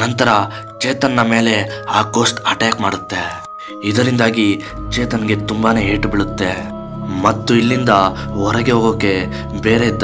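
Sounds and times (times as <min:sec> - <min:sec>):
background music with held tones: 0:00.0 - 0:10.0
person narrating: 0:00.0 - 0:10.0.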